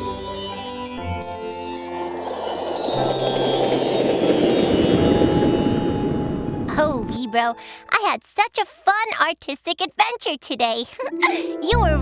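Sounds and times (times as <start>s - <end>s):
shimmering chime-like tinkles: 0.0s - 7.2s
rushing whoosh: 1.2s - 7.2s.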